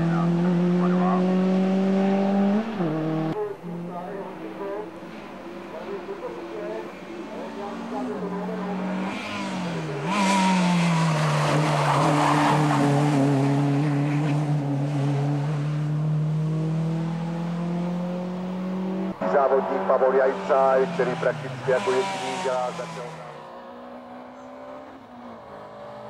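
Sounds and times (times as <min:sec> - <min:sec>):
race car engine: 0:00.0 - 0:26.0.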